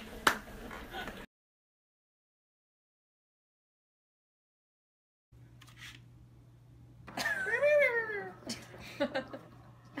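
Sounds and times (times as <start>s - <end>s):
person laughing: 7.1s - 9.6s.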